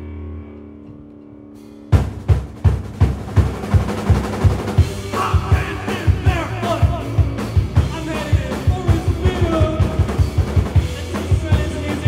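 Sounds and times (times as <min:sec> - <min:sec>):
rock band playing: 0:00.0 - 0:12.0
drum kit beat: 0:01.9 - 0:12.0.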